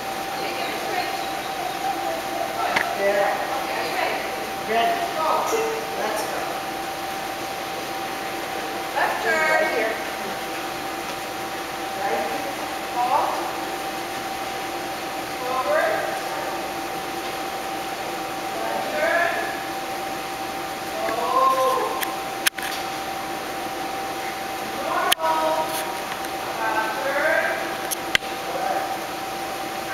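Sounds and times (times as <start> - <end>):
steady hum: 0.0 - 29.9.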